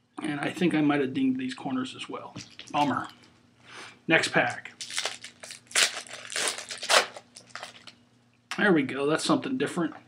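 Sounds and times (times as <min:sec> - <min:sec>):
card pack wrapper crinkling: 0:04.4 - 0:08.0.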